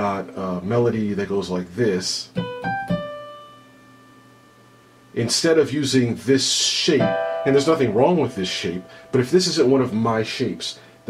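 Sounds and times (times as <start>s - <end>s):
piano note ringing: 2.3s - 5.4s, 6.6s - 11.0s.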